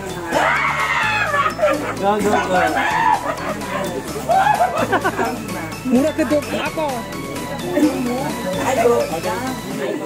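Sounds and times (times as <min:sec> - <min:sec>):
background music with beat: 0:00.0 - 0:10.0
excited voices laughing: 0:00.2 - 0:06.5.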